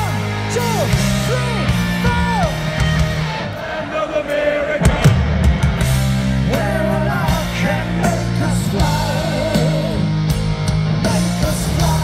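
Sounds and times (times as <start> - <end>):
live metal band: 0.0 - 12.0.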